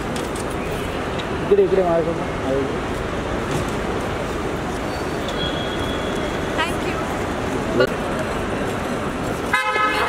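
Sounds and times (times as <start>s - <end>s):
road traffic noise: 0.0s - 10.0s
vehicle horn: 9.5s - 10.0s.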